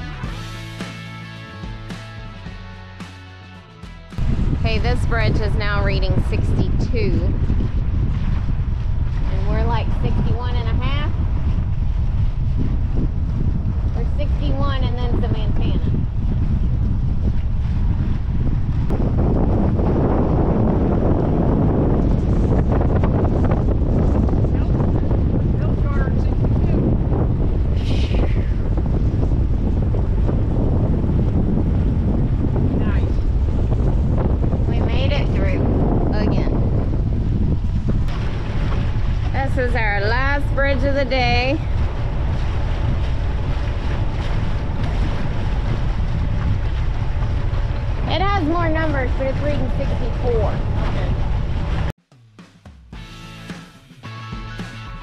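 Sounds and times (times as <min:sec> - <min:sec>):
wind buffeting microphone: 0:04.2 - 0:52.0.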